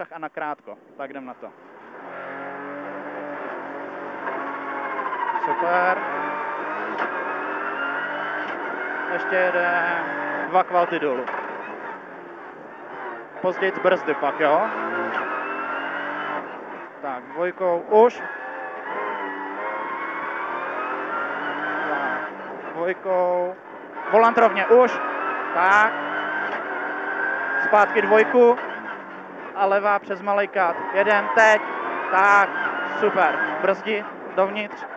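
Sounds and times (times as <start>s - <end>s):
car engine accelerating: 0.8s - 34.9s.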